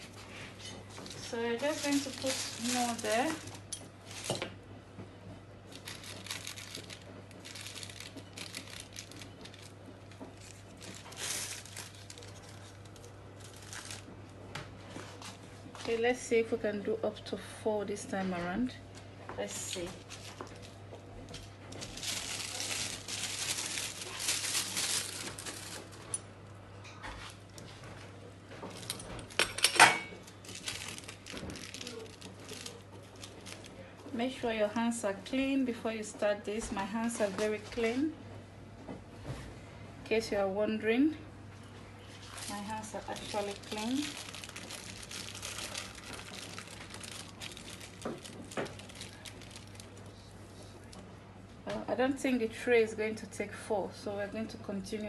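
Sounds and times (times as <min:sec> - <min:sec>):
plastic wrap crinkling: 0:00.0 - 0:04.7, 0:05.6 - 0:16.0, 0:19.4 - 0:29.5, 0:30.1 - 0:34.1, 0:42.0 - 0:51.0.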